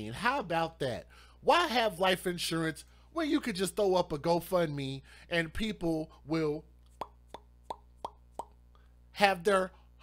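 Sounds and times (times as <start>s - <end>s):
person making clicking pops: 6.8s - 8.6s.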